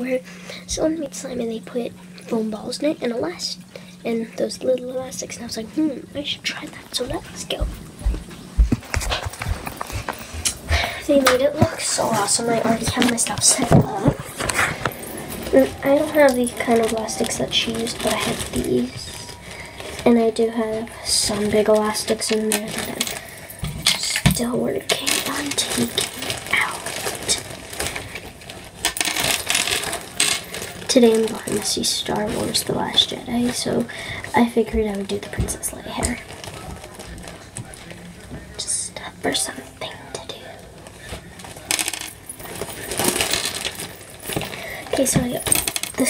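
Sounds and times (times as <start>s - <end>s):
footsteps: 7.0s - 19.4s
hair elastics rattling in plastic tub: 9.6s - 37.8s, 41.5s - 46.0s.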